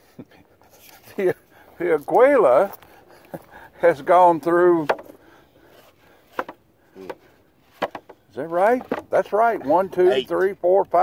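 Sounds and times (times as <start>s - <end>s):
wooden boards clacking: 4.8s - 5.2s, 6.3s - 9.8s.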